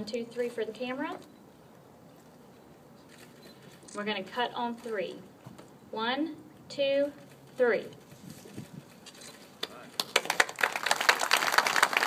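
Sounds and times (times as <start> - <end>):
crowd clapping: 9.6 - 12.0.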